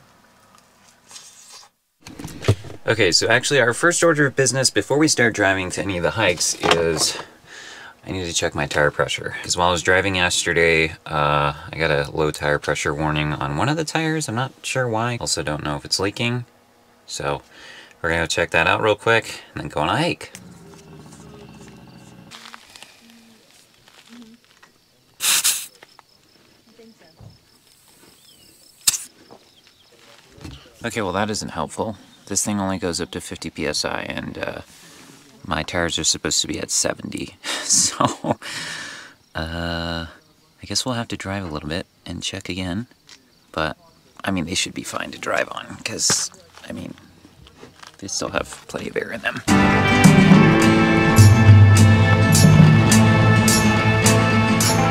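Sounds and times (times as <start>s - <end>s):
paper rustle: 22.3s - 24.7s
air hissing from tyre valve: 25.2s - 25.8s.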